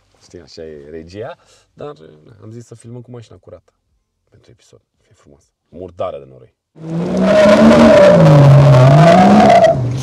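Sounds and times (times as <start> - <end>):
engine accelerating hard: 6.8 - 10.0.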